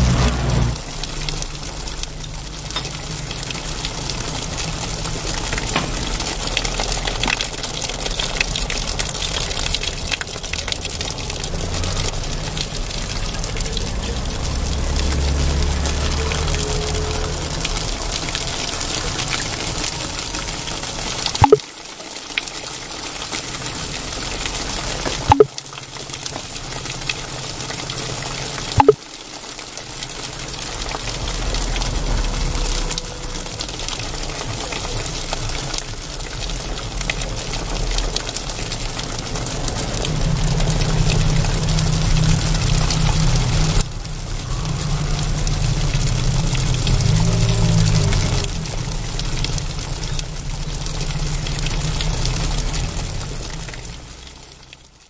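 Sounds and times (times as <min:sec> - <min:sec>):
sharp clicks: 0:21.4 - 0:21.6, 0:25.3 - 0:25.5, 0:28.8 - 0:29.0.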